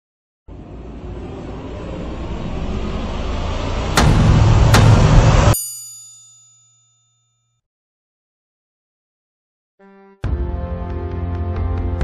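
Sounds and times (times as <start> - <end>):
rumbling whoosh: 0.5 - 5.6
sharp hits: 0.5 - 5.8
bell-like ding: 5.3 - 7.6.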